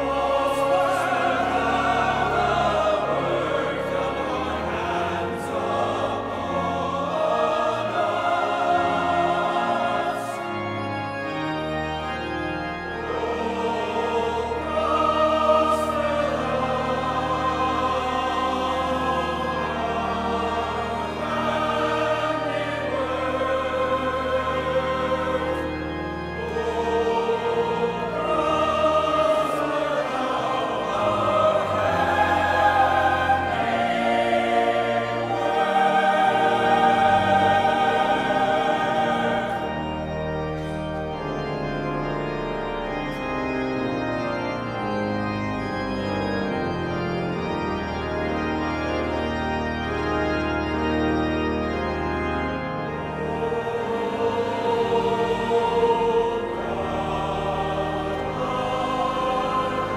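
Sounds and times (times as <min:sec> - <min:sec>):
choir singing: 0:00.0 - 0:59.9
low organ notes: 0:00.0 - 0:59.9.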